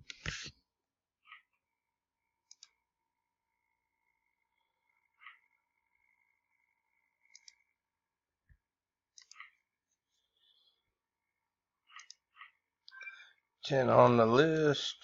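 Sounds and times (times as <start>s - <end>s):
faint mouse clicks: 2.4s - 2.8s, 7.3s - 7.6s, 9.2s - 9.6s, 11.9s - 13.0s.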